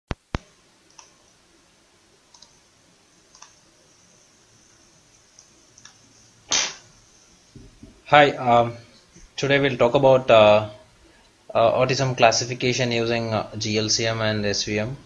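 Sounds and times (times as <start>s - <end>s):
computer mouse clicking: 0.3s - 1.2s, 2.3s - 2.6s, 3.3s - 3.6s, 5.3s - 6.1s
short rush of noise: 6.5s - 6.9s.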